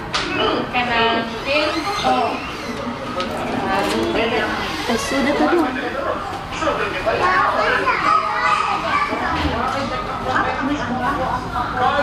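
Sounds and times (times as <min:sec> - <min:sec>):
children chattering and calling out: 0:00.1 - 0:12.0.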